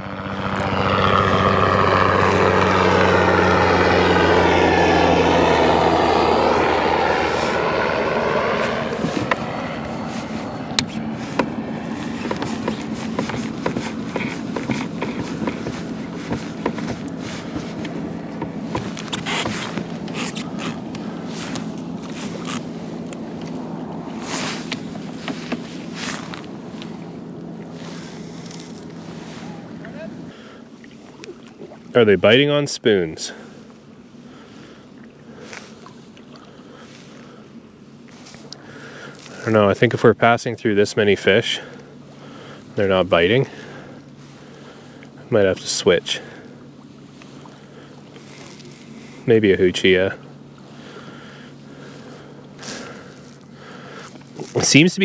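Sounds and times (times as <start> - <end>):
boat hull rushing: 0.0 - 40.0
motorboat engine drone: 0.0 - 55.0
water splashing against kayak: 1.2 - 32.0.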